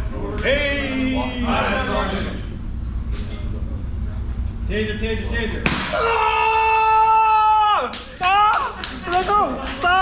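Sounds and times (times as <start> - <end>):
stun gun firing pop: 5.6 - 6.0.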